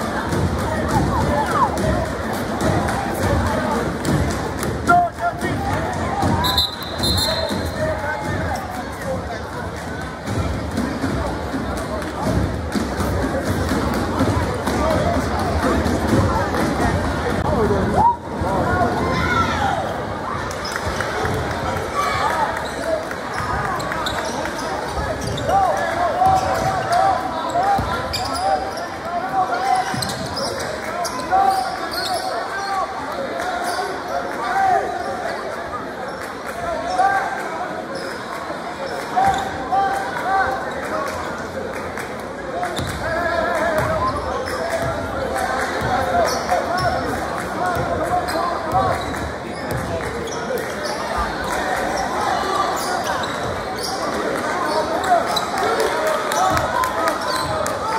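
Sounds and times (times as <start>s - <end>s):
crowd chatter and shouts: 0.0s - 57.9s.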